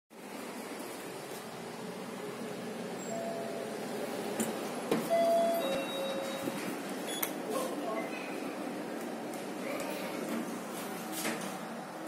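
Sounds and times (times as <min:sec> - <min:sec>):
lift lobby hum: 0:00.1 - 0:12.0.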